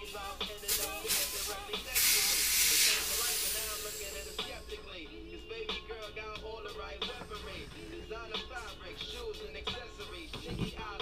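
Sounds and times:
air hissing out of tire valve: 0:00.0 - 0:04.9
rapping over background music: 0:00.0 - 0:11.0.

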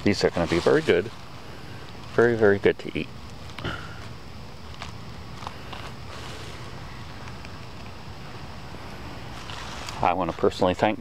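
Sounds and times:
woodland background noise: 0:00.0 - 0:11.0.

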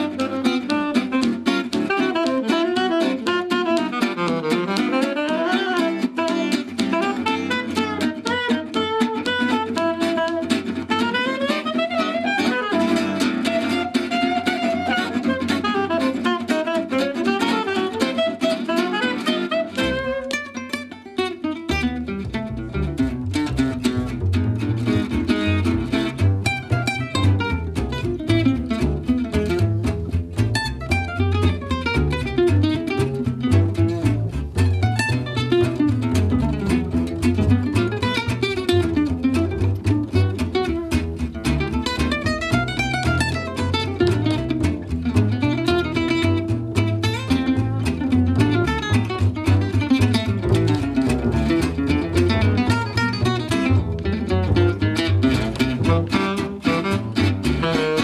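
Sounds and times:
tenor saxophone melody: 0:00.0 - 0:20.9, 0:55.5 - 0:58.0
acoustic guitar: 0:00.0 - 0:58.0
plucked upright bass: 0:00.0 - 0:58.0.

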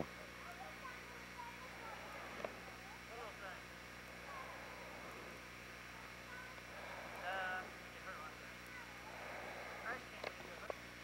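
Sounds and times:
faint distant voices calling: 0:00.0 - 0:11.0
steady low hum: 0:00.0 - 0:11.0.

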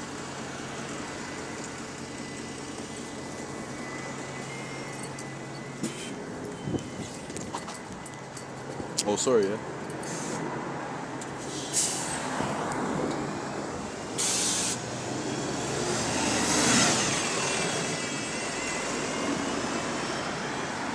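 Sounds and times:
road traffic: 0:00.0 - 0:20.9
bus engine passing: 0:09.6 - 0:20.9
air brake hiss: 0:10.0 - 0:10.5, 0:11.4 - 0:12.2, 0:14.2 - 0:14.8.

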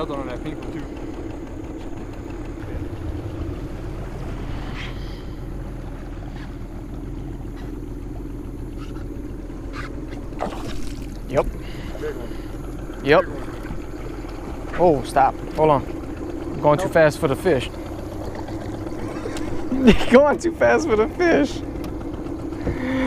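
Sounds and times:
boat motor droning: 0:00.0 - 0:23.0.

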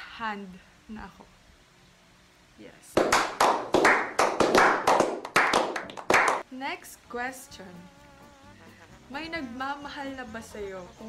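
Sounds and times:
men clapping hands: 0:03.0 - 0:06.4.

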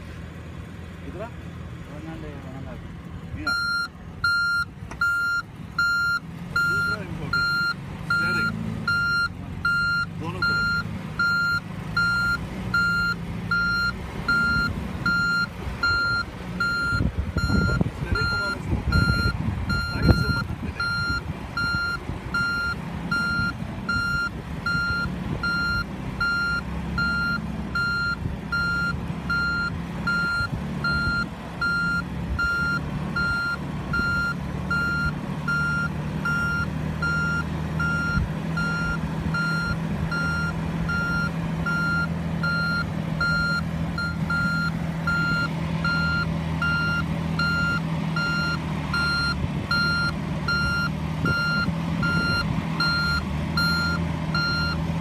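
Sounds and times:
engine running at low revs: 0:00.0 - 0:55.0
reverse warning beeping: 0:03.4 - 0:54.9.

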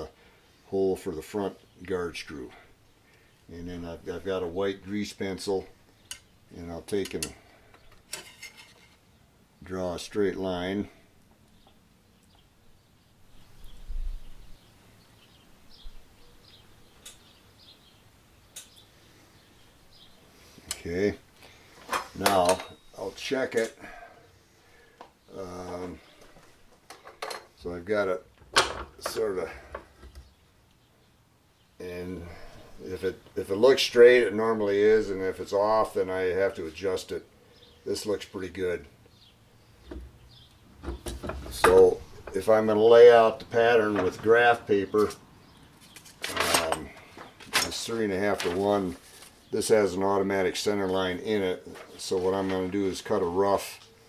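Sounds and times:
faint bird chirps: 0:11.4 - 0:21.8, 0:22.4 - 0:26.4
sharp clicks: 0:18.5 - 0:18.9.

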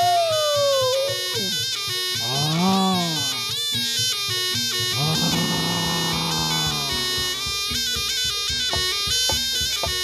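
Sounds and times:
ensemble melody: 0:02.2 - 0:03.6, 0:04.9 - 0:07.6.

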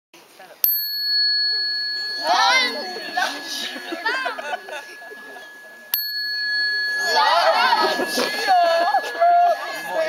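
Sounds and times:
metal chime struck ringing: 0:00.6 - 0:10.0.

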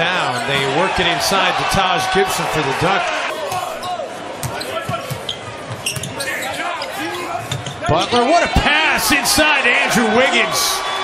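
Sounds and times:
crowd noise: 0:00.0 - 0:11.0
sneaker squeaks: 0:03.8 - 0:07.8.

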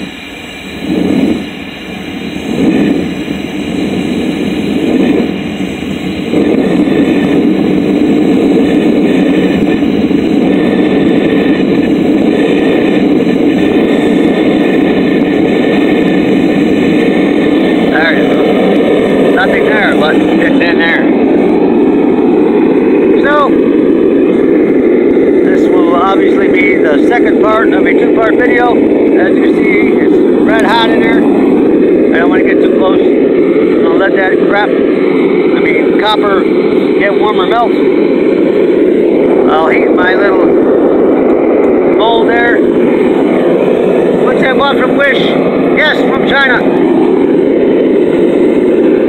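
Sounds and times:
propane burner roaring: 0:00.0 - 0:49.0.

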